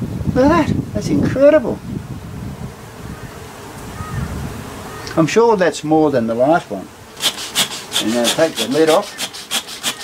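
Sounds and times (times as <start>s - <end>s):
wind on microphone: 0.0s - 5.2s
honeybee colony humming: 1.0s - 10.0s.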